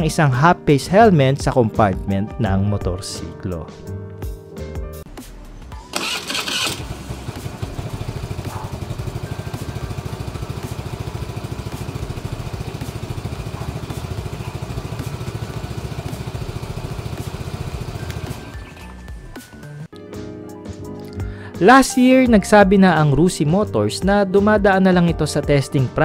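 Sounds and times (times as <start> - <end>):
scooter engine starting and idling: 5.8 - 19.2.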